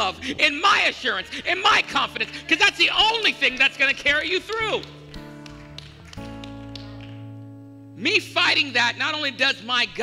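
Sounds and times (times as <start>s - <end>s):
person preaching: 0.0s - 4.9s, 8.0s - 10.0s.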